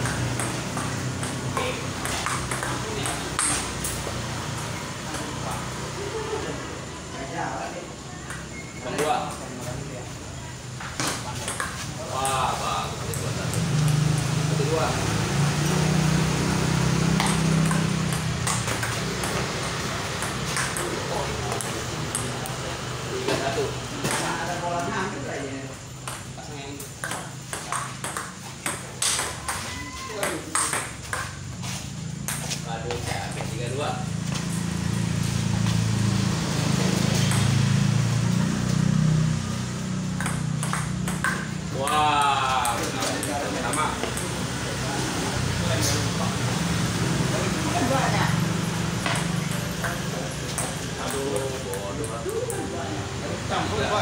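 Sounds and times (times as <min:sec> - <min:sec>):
table tennis ball clicking: 0:00.0 - 0:04.0, 0:17.2 - 0:22.6, 0:26.0 - 0:31.4, 0:40.2 - 0:41.6.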